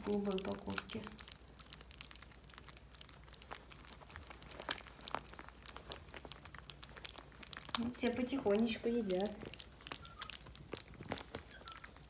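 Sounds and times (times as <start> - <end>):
puppies lapping food: 0.0 - 12.0.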